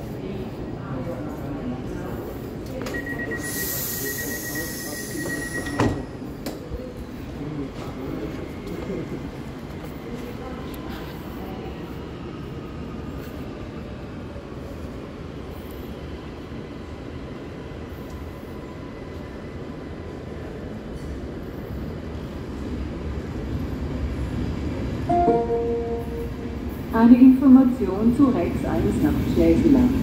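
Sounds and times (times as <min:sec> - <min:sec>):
faint train squeal: 0:02.8 - 0:06.9.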